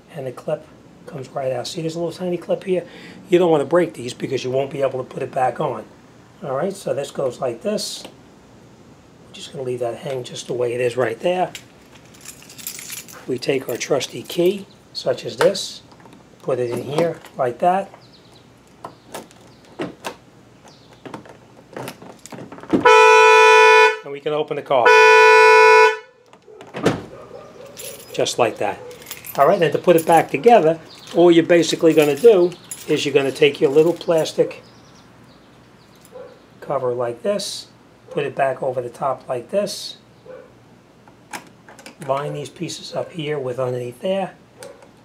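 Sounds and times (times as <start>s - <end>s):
car horn blast: 22.8s - 24.1s, 24.8s - 26.2s.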